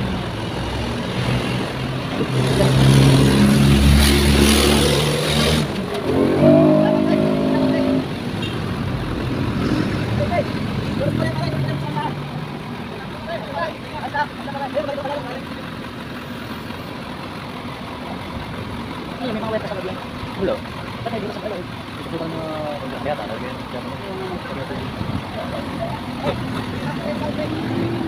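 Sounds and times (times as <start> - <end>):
vehicle engine revving: 0.0 - 13.1, 17.6 - 28.0
road traffic: 0.0 - 28.0.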